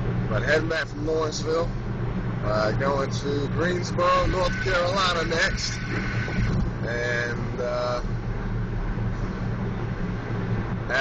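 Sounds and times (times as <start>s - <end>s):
car engine drone: 0.0s - 11.0s
road noise: 0.0s - 11.0s.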